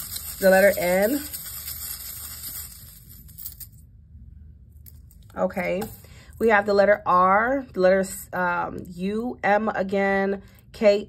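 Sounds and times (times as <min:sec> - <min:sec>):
small metal charms rustling: 0:00.0 - 0:03.8.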